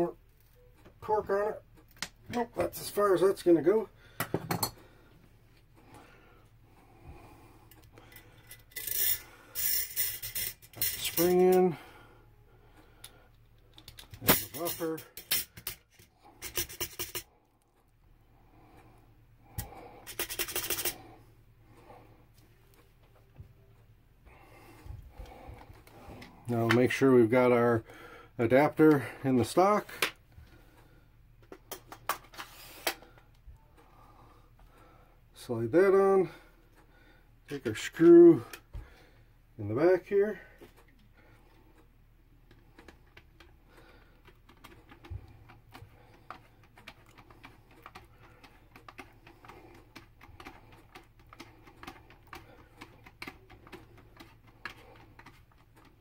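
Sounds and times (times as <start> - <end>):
rubbing and scraping handling noise: 6.8 - 11.8, 13.3 - 17.8, 18.8 - 23.7, 31.4 - 33.4, 39.6 - 56.0.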